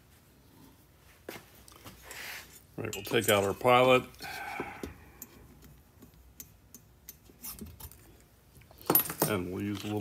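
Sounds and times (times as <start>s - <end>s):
steel tools clicking and tapping: 2.8s - 3.7s, 5.2s - 8.0s.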